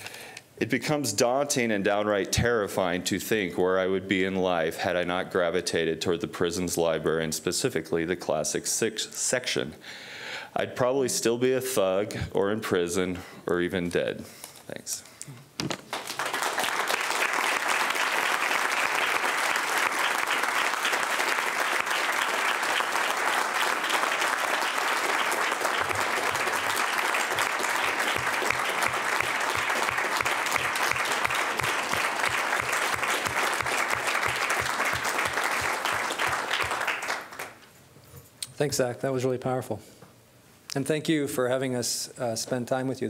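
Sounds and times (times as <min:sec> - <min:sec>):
person clapping close to microphone: 0:15.7 - 0:37.6
audience applauding: 0:15.8 - 0:37.6.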